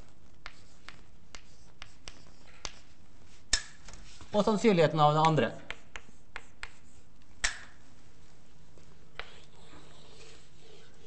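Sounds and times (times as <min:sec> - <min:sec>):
chalk tapping on blackboard: 0:00.4 - 0:03.8, 0:05.2 - 0:07.8, 0:09.1 - 0:09.5.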